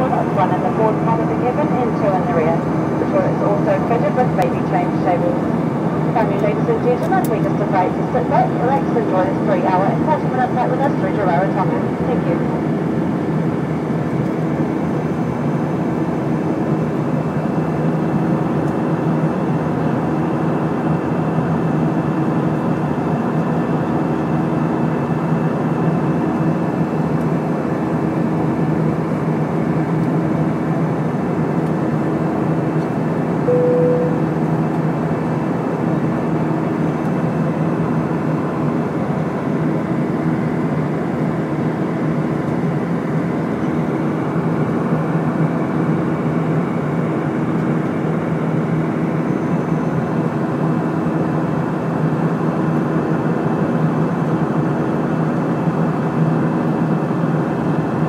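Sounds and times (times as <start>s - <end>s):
jet engines droning: 0.0s - 25.0s, 32.2s - 36.9s
airplane cabin airflow rush: 0.0s - 53.6s
short higher tone: 33.5s - 34.5s.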